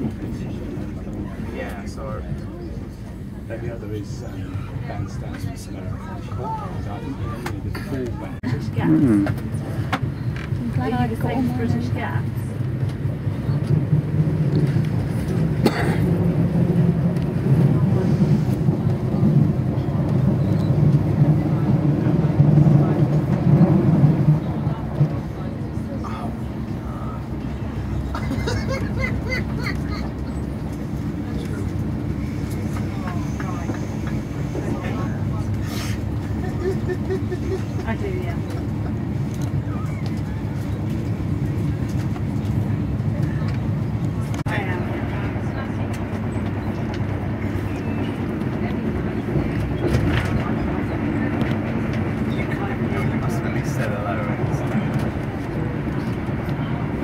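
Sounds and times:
train rumble from inside carriage: 0:00.0 - 0:57.0
wheels running on track: 0:00.0 - 0:57.0.

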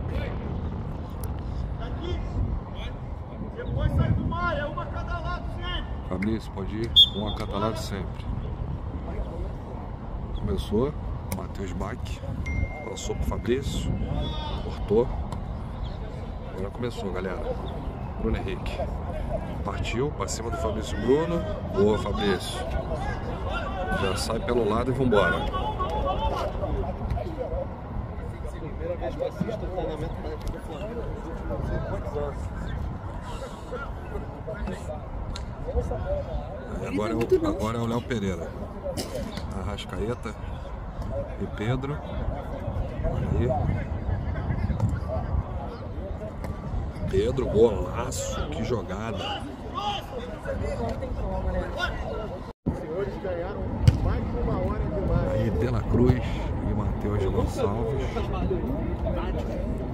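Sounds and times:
people talking and calling out: 0:00.0 - 0:59.9
football being kicked: 0:53.8 - 0:54.1.

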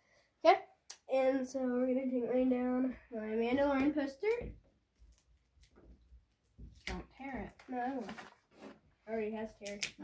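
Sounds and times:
paper poster rustling: 0:06.9 - 0:10.0
paper crackle: 0:07.6 - 0:08.8.

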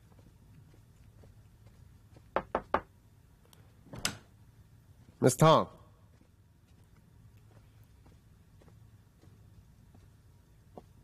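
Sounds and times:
knocks on wooden door: 0:02.4 - 0:02.9.

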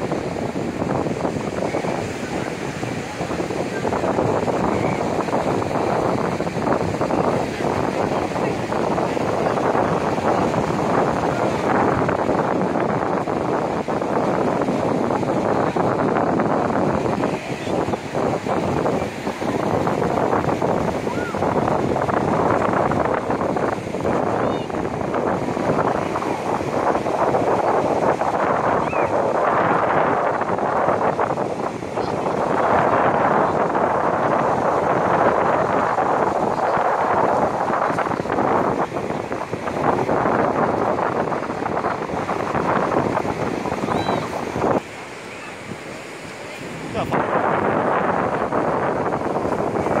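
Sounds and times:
ocean surf washing ashore: 0:00.0 - 0:50.0
wind noise on microphone: 0:00.0 - 0:50.0
people talking: 0:01.4 - 0:13.0, 0:17.1 - 0:19.5, 0:24.0 - 0:24.9, 0:31.9 - 0:34.4, 0:43.8 - 0:48.1.

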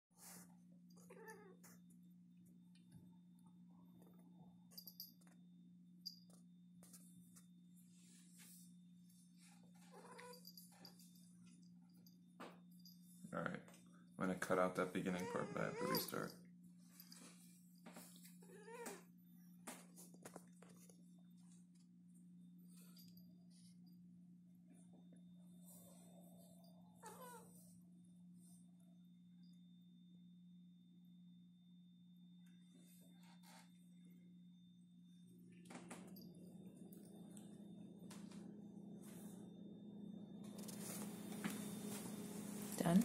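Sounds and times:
cat yowling: 0:01.1 - 0:01.6, 0:15.2 - 0:16.2, 0:27.0 - 0:27.5
faint rustles and soft knocks: 0:06.1 - 0:13.9, 0:40.4 - 0:43.0
steady low hum: 0:19.0 - 0:43.0.

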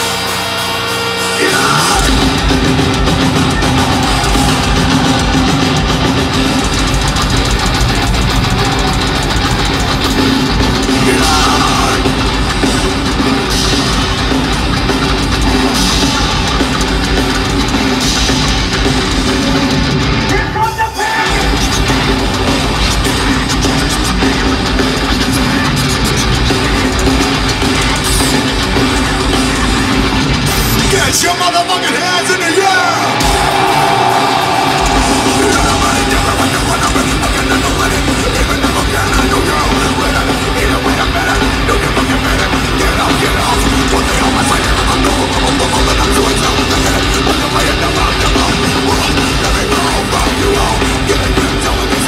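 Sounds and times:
distorted guitars: 0:00.0 - 0:52.0
drums: 0:00.0 - 0:52.0.

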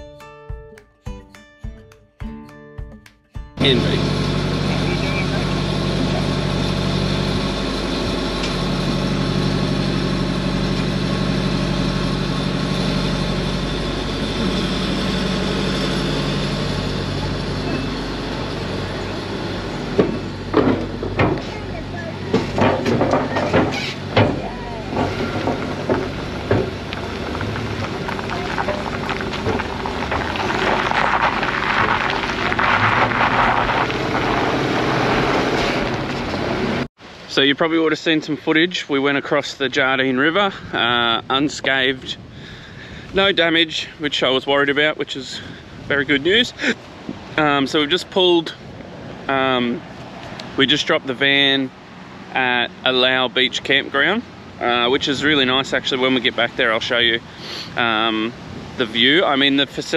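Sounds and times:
vehicle engine running: 0:03.6 - 0:36.9
tyre noise on dirt road: 0:03.6 - 0:37.0, 0:39.9 - 0:59.9
tyres clunking over timber boards: 0:19.9 - 0:21.6, 0:22.2 - 0:31.6.

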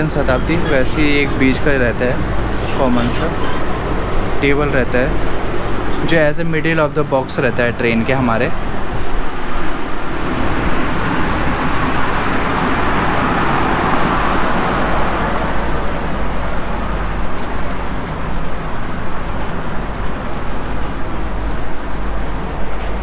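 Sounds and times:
train ventilation hum: 0:00.0 - 0:23.0.

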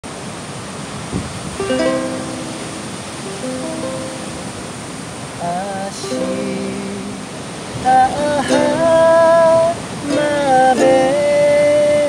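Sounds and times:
background hiss: 0:00.1 - 0:12.0
ukulele plucking melody: 0:01.6 - 0:04.9, 0:05.8 - 0:12.0.

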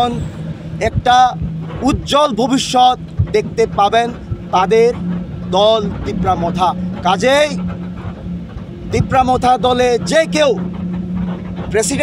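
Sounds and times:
steady low hum: 0:00.0 - 0:12.0
man speaking: 0:00.8 - 0:07.6, 0:08.9 - 0:10.6, 0:11.7 - 0:12.0.

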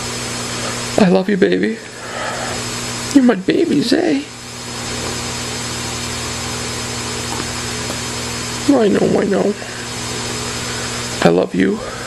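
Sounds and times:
mechanical whir with low hum: 0:00.0 - 0:12.0.

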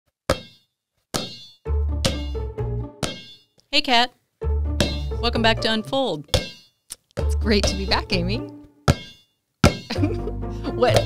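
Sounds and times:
bass-heavy music: 0:01.7 - 0:03.0, 0:04.4 - 0:05.9, 0:07.2 - 0:08.6, 0:10.0 - 0:11.0
basketball bouncing on hard floor: 0:02.0 - 0:02.4, 0:04.8 - 0:05.1, 0:06.3 - 0:06.6, 0:07.2 - 0:08.0, 0:08.9 - 0:09.9.

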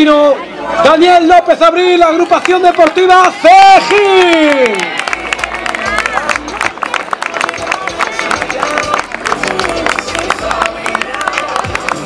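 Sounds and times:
crowd clapping: 0:02.2 - 0:12.0
music: 0:05.0 - 0:12.0.

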